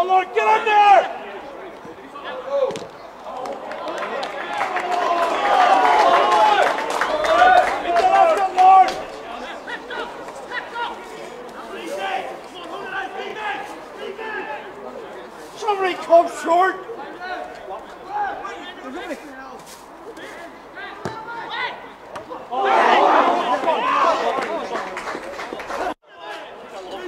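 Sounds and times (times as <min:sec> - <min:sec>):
men shouting: 0:00.0 - 0:01.3, 0:04.7 - 0:11.0, 0:22.4 - 0:24.4.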